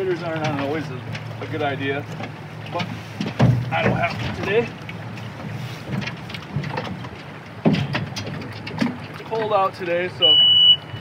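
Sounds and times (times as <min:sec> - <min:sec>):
footsteps on metal boat hull: 0:00.0 - 0:10.0
loud thuds: 0:03.2 - 0:04.6.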